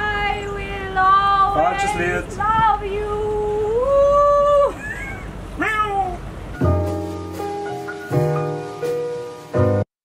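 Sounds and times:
piano music: 6.0 - 9.9.

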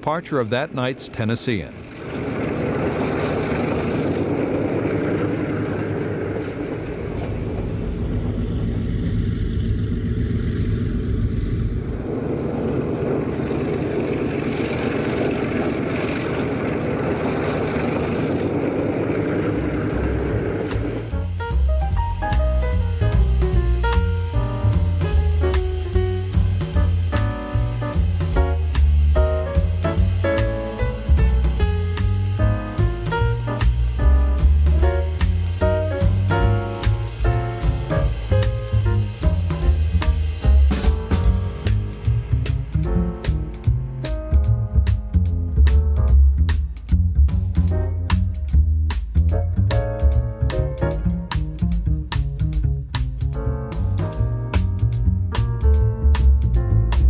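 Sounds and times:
diesel locomotive engines rumbling: 0.0 - 57.0
jazz music with drums and bass: 19.6 - 57.0.

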